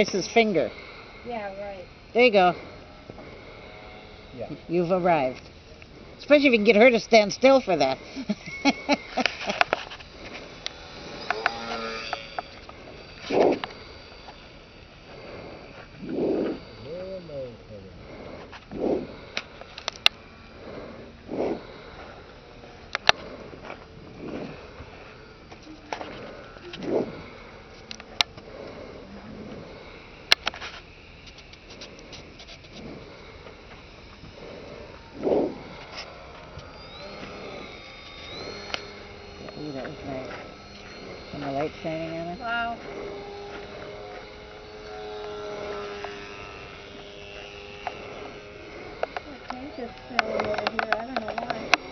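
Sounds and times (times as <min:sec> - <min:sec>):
sharp clicks: 0:08.2 - 0:14.4, 0:18.6 - 0:20.2, 0:22.9 - 0:23.4, 0:25.5 - 0:28.5, 0:33.5 - 0:51.9.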